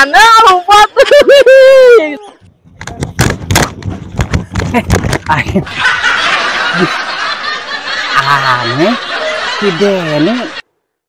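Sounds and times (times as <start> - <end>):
man laughing: 0.8 - 1.8, 4.6 - 10.6.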